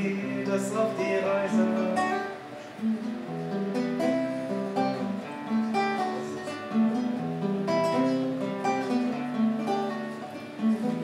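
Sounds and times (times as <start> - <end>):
classical guitar playing: 0.0 - 11.0.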